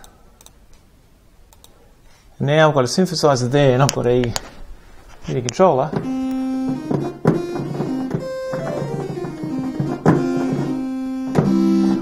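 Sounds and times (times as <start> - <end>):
synthesizer notes: 6.0 - 12.0.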